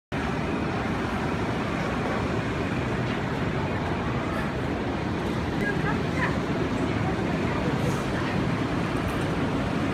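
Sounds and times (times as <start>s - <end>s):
steady rumbling background noise: 0.1s - 9.9s.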